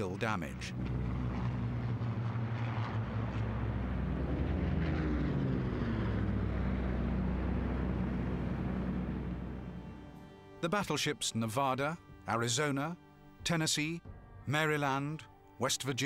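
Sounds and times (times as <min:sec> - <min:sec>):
propeller aircraft engines droning: 0:00.0 - 0:14.1.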